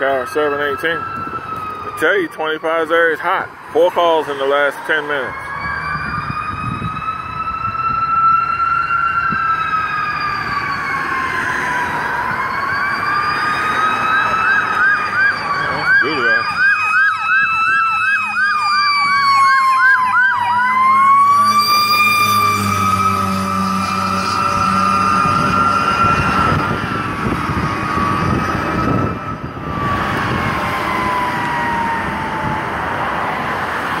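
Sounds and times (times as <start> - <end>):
siren wailing: 0.0 - 34.0
siren yelp: 0.0 - 34.0.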